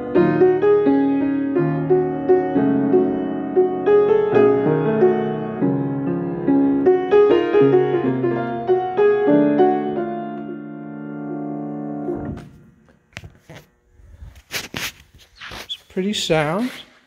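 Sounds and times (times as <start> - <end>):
grand piano notes and chords: 0.0 - 13.1
rustling: 13.2 - 17.0.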